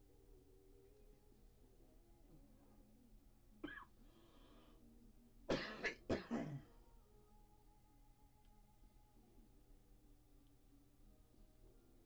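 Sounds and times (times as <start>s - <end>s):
person coughing: 5.5s - 6.7s.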